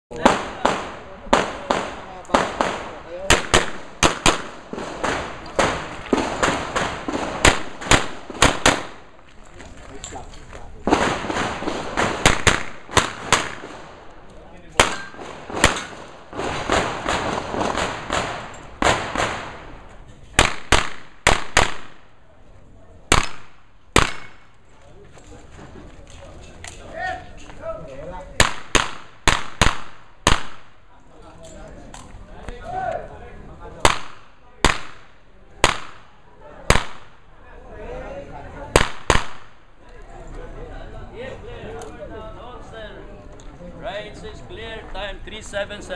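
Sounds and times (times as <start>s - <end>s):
pistol shots echoing: 0.2s - 9.1s, 10.9s - 14.1s, 14.8s - 19.7s, 20.4s - 22.1s, 23.1s - 24.5s, 28.4s - 30.8s, 33.8s - 36.1s, 38.7s - 39.6s.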